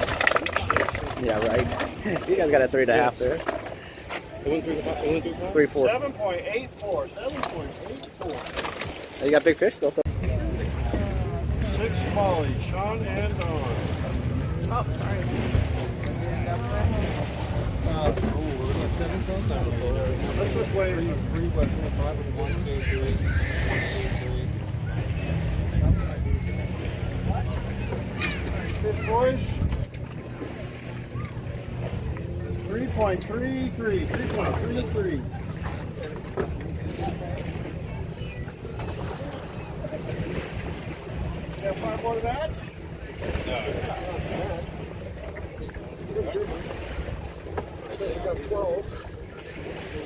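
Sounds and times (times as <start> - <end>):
boat engine idling: 0.0 - 50.0
faint voices: 0.0 - 50.0
wind buffeting microphone: 13.6 - 33.0.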